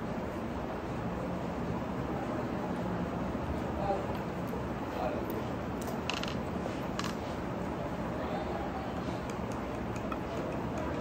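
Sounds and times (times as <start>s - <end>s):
restaurant room noise: 0.0s - 11.0s.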